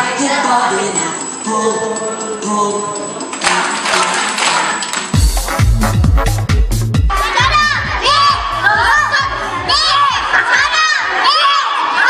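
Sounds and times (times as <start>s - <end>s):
young children shouting: 7.1s - 12.0s.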